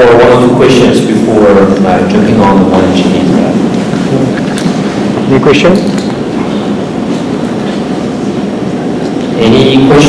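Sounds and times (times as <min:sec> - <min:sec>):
faint audience murmuring: 0:00.0 - 0:10.0
low rumble of room noise: 0:00.0 - 0:10.0.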